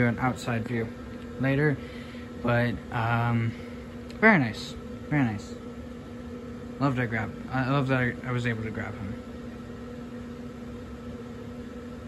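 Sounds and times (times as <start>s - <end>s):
electric blower fan humming: 0.0s - 12.0s.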